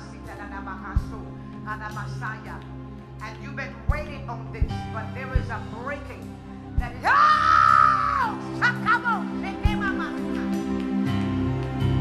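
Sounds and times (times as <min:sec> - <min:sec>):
background music chords: 0:00.0 - 0:12.0
person screaming: 0:07.1 - 0:08.4.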